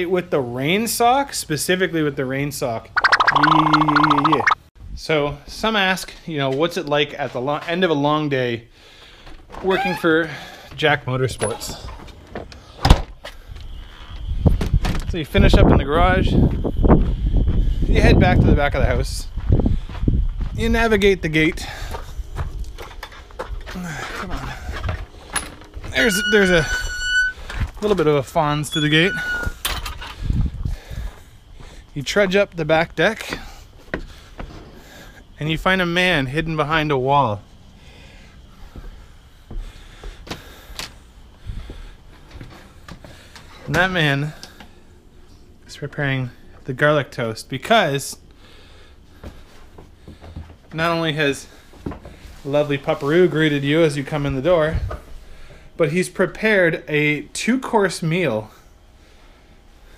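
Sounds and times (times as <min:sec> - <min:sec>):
gate hinge squeaking: 0:09.7 - 0:10.2, 0:25.9 - 0:27.5, 0:28.6 - 0:29.7.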